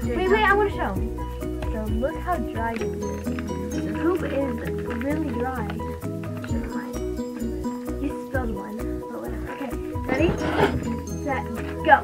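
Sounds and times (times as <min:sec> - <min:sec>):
girl speaking: 0:00.0 - 0:01.2, 0:03.9 - 0:05.7, 0:08.0 - 0:12.0
background music with held notes: 0:00.0 - 0:12.0.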